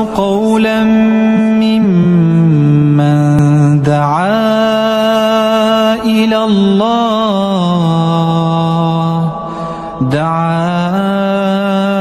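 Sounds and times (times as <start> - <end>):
person reciting melodic chant: 0.0 - 12.0.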